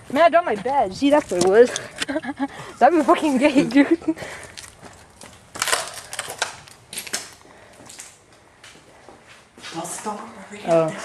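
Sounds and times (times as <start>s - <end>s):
crunching and rustling: 4.3s - 8.2s.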